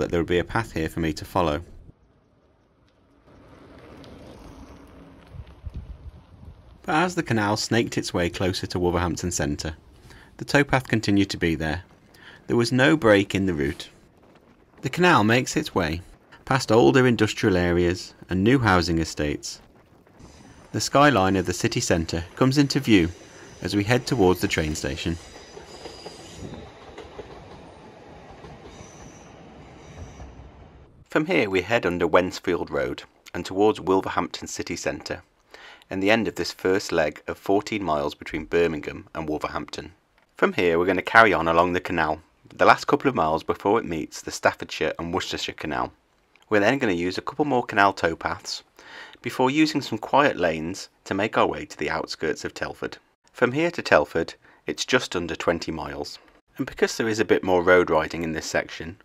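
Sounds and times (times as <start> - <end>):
wind rumbling on microphone: 1.6 - 6.9, 10.8 - 25.3
high wheel squeals: 20.2 - 30.9
train wheels rumbling on rail: 20.2 - 31.1.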